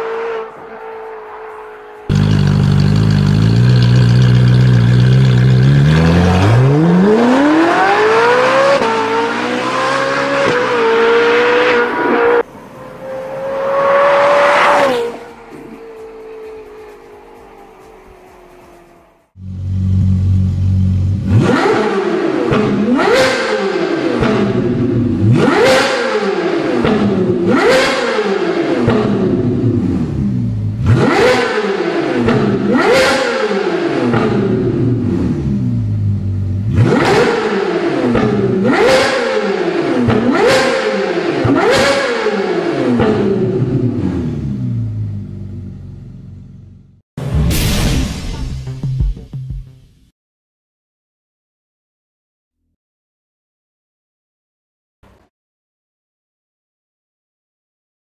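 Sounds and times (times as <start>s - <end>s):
sports car engine idling and revving: 2.0s - 47.0s
car passing by: 11.6s - 19.4s.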